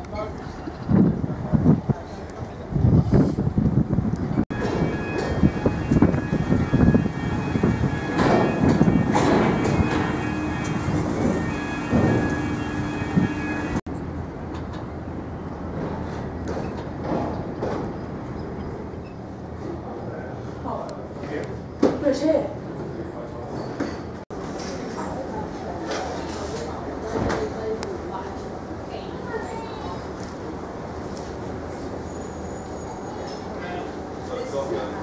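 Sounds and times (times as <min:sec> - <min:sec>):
gusty wind buffeting microphone: 0:00.4 - 0:18.6
faint ship machinery tones: 0:04.5 - 0:13.8.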